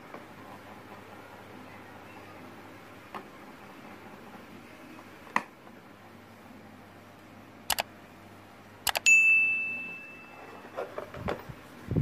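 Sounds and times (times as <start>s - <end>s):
mouse clicks: 7.7s - 7.9s
notification bell ding: 9.0s - 10.8s.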